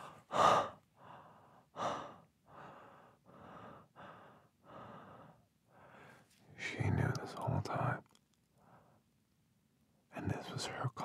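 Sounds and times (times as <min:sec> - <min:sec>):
man breathing heavily: 0:00.0 - 0:06.2.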